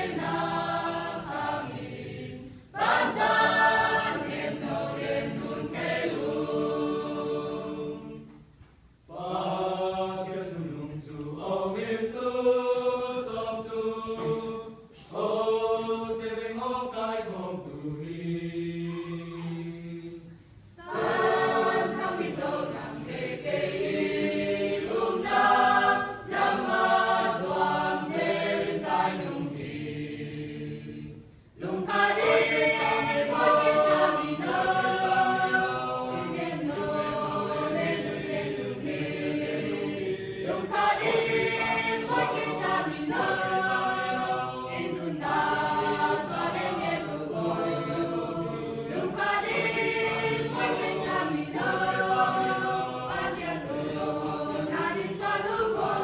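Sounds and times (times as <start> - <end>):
choir singing a hymn: 0.0 - 8.5, 9.1 - 56.0.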